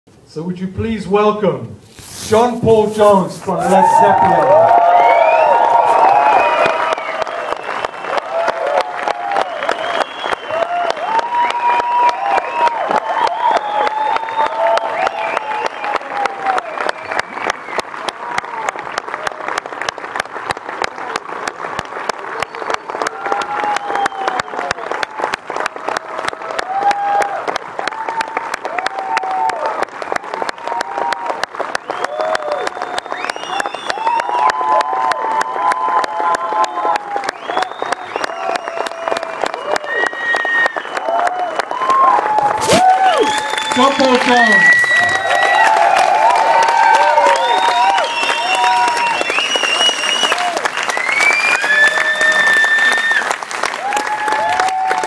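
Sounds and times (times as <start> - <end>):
audience applauding: 2.3 - 55.0.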